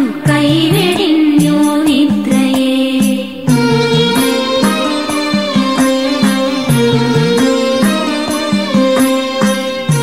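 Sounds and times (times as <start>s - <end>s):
percussion keeping steady beat: 0.0s - 10.0s
sustained melodic lines: 3.5s - 10.0s.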